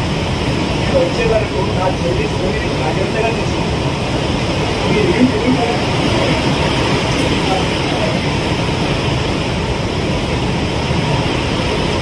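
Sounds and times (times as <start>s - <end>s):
steady rushing rumbling noise: 0.0s - 12.0s.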